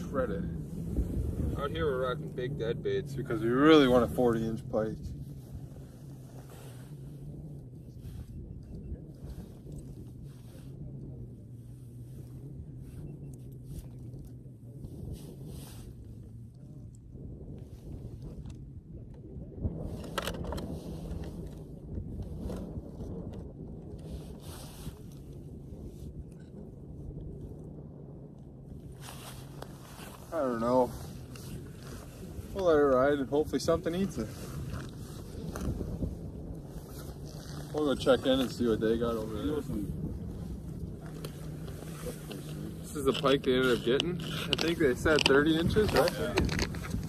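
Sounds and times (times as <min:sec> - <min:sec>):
steady low hum: 0:00.0 - 0:47.0
gear scraping: 0:28.9 - 0:47.0.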